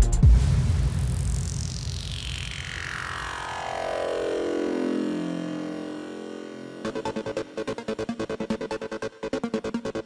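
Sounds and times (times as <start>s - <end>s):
synthesized downward sweep: 0.4s - 10.0s.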